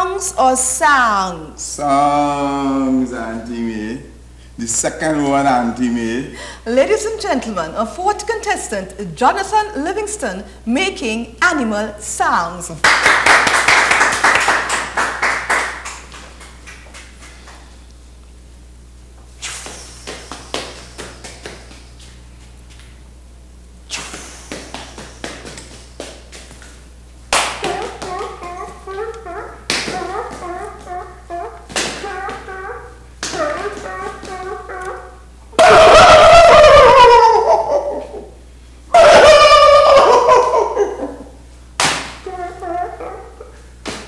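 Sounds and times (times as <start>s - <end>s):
man making mouth clicks: 19.4s - 21.9s, 23.9s - 26.7s
loud cries dropping in pitch: 27.6s - 38.0s, 38.9s - 41.1s
man yelping animal calls: 27.6s - 41.2s.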